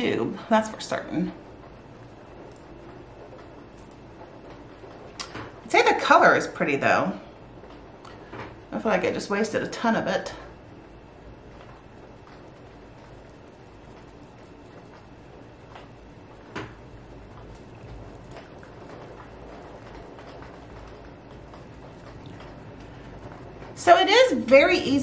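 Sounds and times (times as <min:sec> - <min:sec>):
rain pattering on windows: 0:00.0 - 0:25.0.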